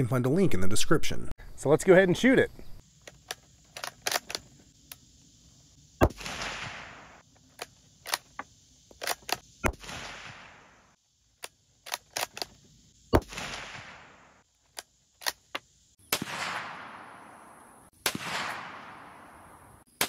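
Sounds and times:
rifle bolt clicks: 3.0s - 5.0s
rifle shots: 6.0s - 7.2s, 9.0s - 10.9s, 13.1s - 14.4s, 16.1s - 19.6s.

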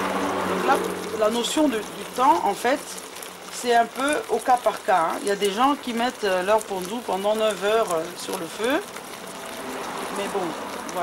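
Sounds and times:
pot boiling: 0.0s - 11.0s.

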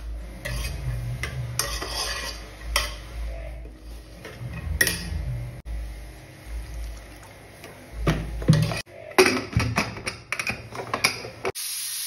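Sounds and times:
spoon stirring and scraping in pot: 0.0s - 5.4s.

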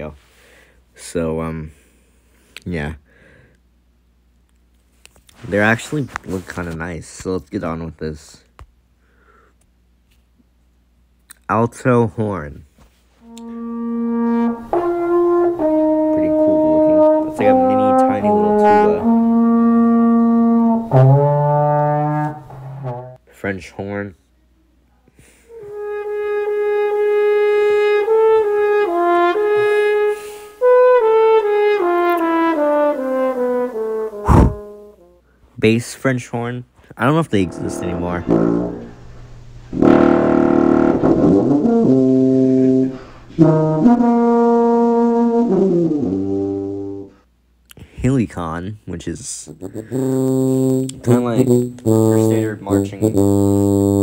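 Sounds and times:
alto horn long notes: 13.2s - 23.2s, 25.5s - 35.2s, 37.2s - 47.2s, 49.5s - 54.0s.

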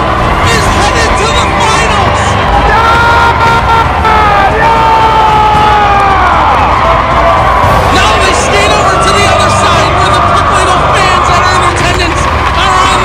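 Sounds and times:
crowd cheering and yelling: 0.0s - 13.0s.

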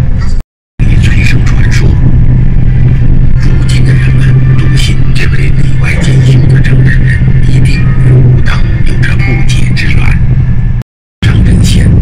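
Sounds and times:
road noise: 0.0s - 12.0s
vehicle engine drone: 0.0s - 12.0s
voices talking: 0.8s - 2.2s, 2.8s - 10.3s, 11.2s - 12.0s.

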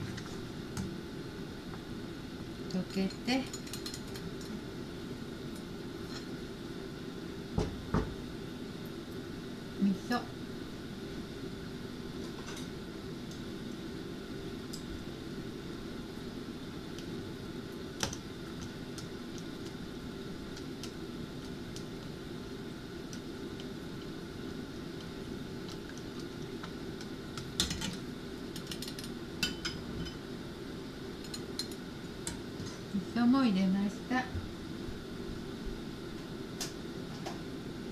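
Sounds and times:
steady low hum: 0.0s - 37.9s
utensils clicking against pot: 2.9s - 4.6s, 25.7s - 30.2s, 31.2s - 32.4s.

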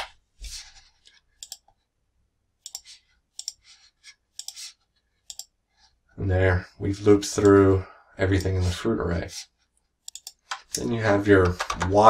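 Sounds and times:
keyboard and mouse clicks: 1.4s - 1.8s, 2.6s - 3.6s, 4.4s - 5.5s, 10.0s - 12.0s.

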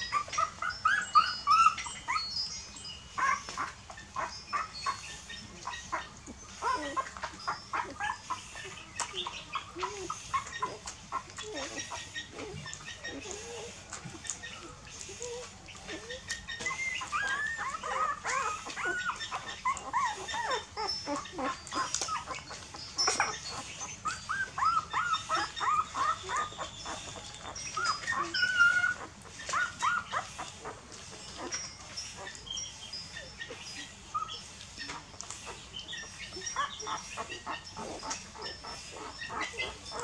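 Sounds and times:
puppies squeaking and whimpering: 0.0s - 40.0s.

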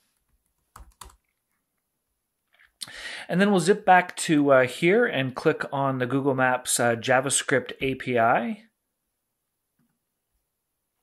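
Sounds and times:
computer keyboard keystrokes: 0.6s - 1.3s.

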